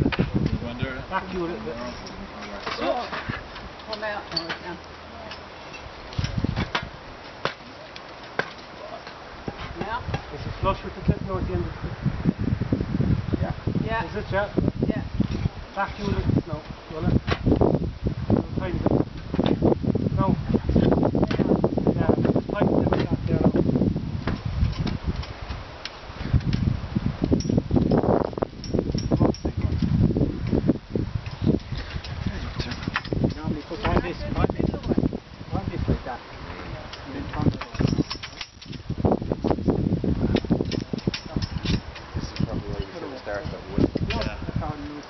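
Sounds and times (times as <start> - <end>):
wind buffeting microphone: 0.0 - 7.5, 8.1 - 45.0.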